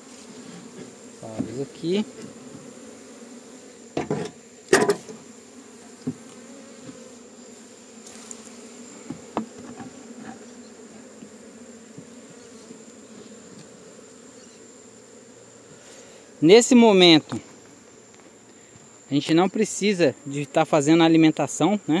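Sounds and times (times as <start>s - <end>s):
bees buzzing: 0.0s - 22.0s
knocks on wooden hive: 1.3s - 1.6s, 4.0s - 5.2s, 6.0s - 7.0s, 9.0s - 10.3s.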